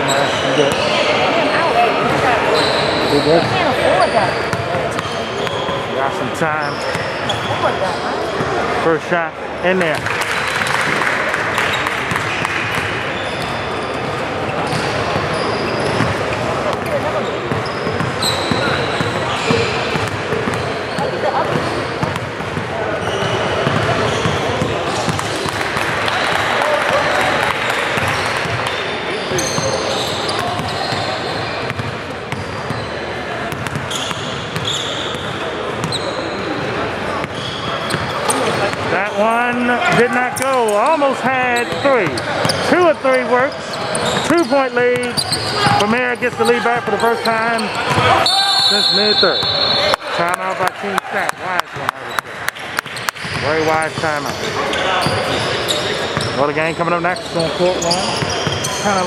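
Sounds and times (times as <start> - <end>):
sneakers squeaking: 0.0 - 8.8, 9.6 - 50.3, 51.7 - 59.0
chatter of people: 0.0 - 59.0.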